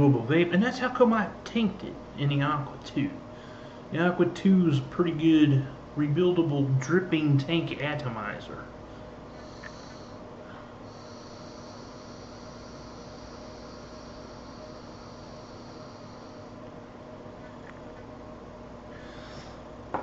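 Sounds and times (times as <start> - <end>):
e-cigarette high-pitched whine: 9.2 - 18.0, 18.9 - 19.7.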